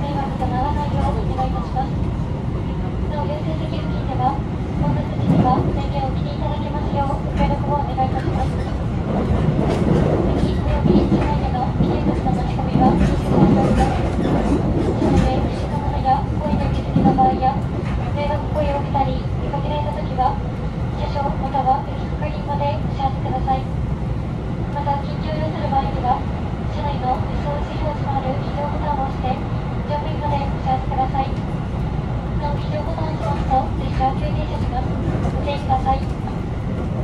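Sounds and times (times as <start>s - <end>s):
train running rumble: 0.0s - 37.0s.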